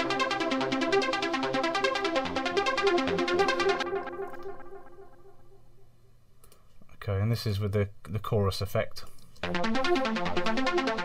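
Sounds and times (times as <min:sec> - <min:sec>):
synthesizer delay echoes: 0:00.0 - 0:05.8, 0:09.4 - 0:11.0.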